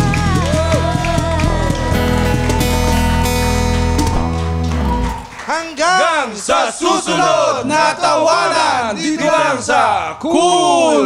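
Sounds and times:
song final chord: 0.0 - 5.4
men cheering and yelling: 0.0 - 11.0.

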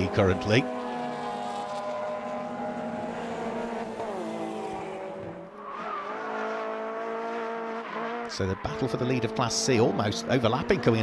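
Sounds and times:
racing car engines revving: 0.0 - 11.0.

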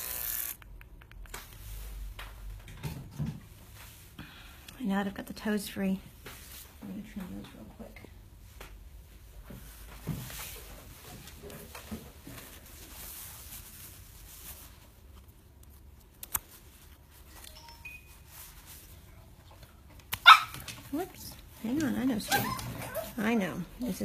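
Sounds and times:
grooming tools clicking and rustling: 0.0 - 1.7, 20.0 - 22.9.

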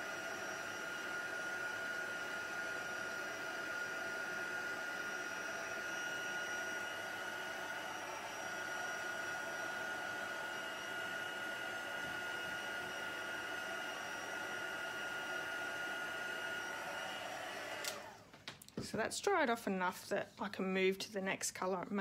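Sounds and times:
heat gun blowing air: 0.0 - 18.2.

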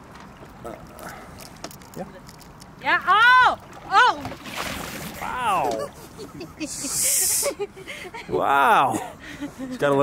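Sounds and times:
water splashing: 0.0 - 6.2
woman laughing: 5.6 - 9.7.

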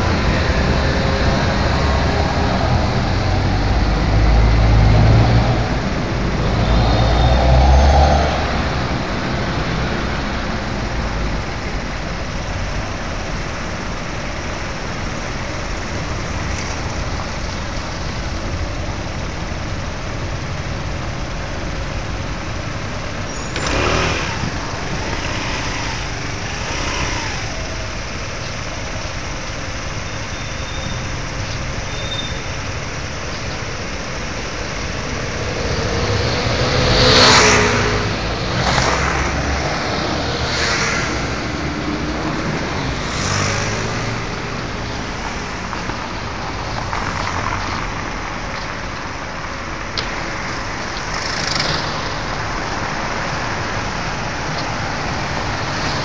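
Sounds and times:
hum of city traffic: 0.0 - 56.0
vehicles passing close by: 0.0 - 56.0.

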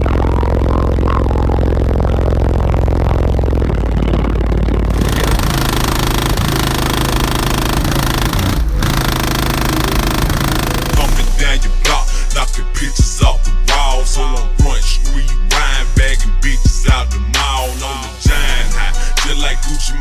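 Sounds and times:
deep bass-heavy music: 0.0 - 20.0.

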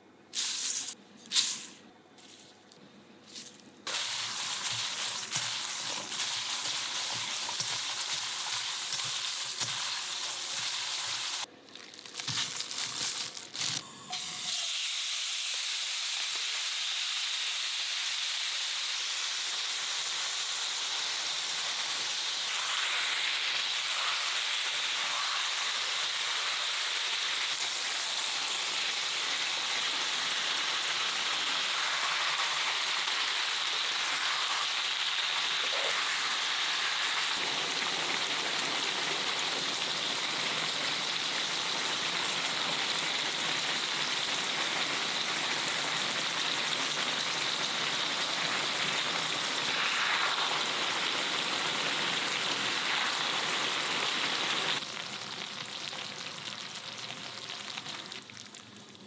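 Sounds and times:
food sizzling in a pan: 3.9 - 11.5, 14.0 - 58.8.

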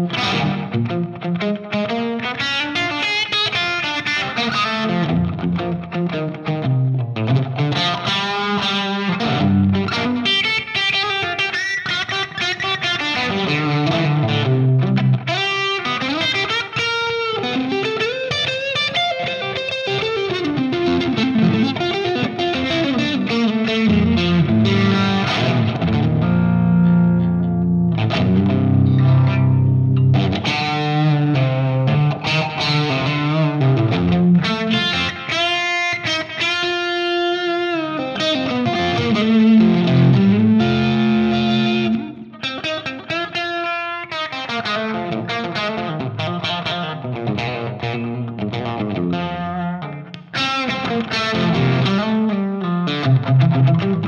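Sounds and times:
overdriven electric guitar lead: 0.0 - 54.0.

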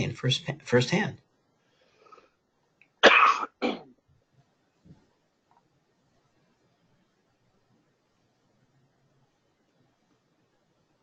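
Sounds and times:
person coughing: 3.0 - 3.9.

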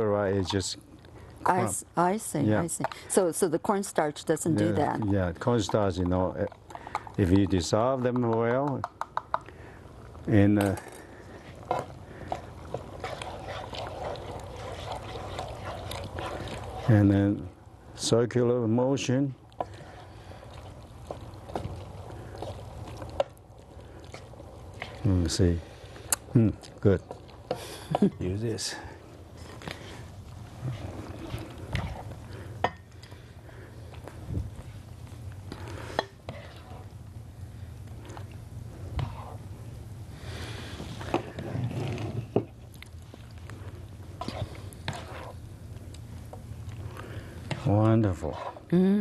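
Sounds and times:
spatula stirring sauce: 4.6 - 10.2, 11.0 - 42.6, 43.6 - 48.7
steady low hum: 9.4 - 49.0
spatula scraping skillet: 11.0 - 17.3, 27.1 - 32.9, 35.5 - 36.9, 38.8 - 39.5, 40.4 - 42.5, 44.2 - 45.5, 47.4 - 48.7.

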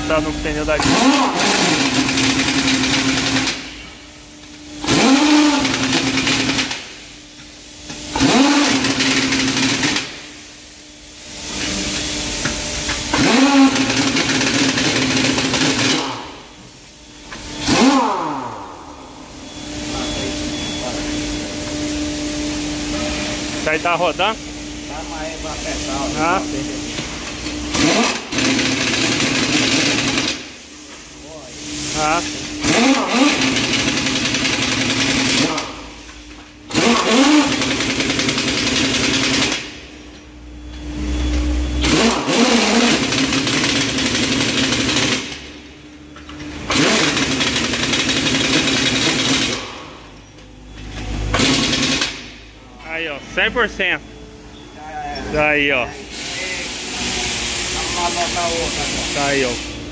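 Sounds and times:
impact wrench running: 0.0 - 10.7, 11.3 - 20.3, 21.6 - 40.2, 41.0 - 53.9
compressed air hissing: 56.1 - 59.6.

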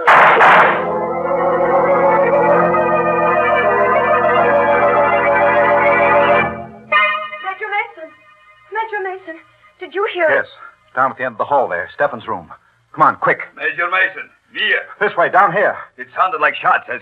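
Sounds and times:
organ chords: 0.0 - 11.4
voices: 7.4 - 17.0.

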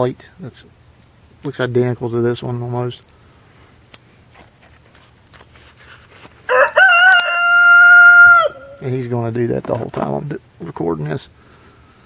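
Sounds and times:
rooster crowing: 6.5 - 8.8.

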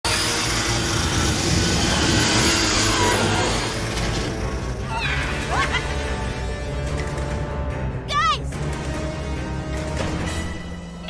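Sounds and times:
spinning buzzsaws whirring: 0.0 - 5.8.

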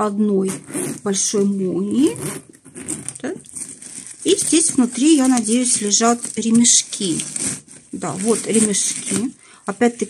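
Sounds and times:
metal zipper drawn open: 0.4 - 9.4
tissue paper rustling: 0.5 - 10.0.

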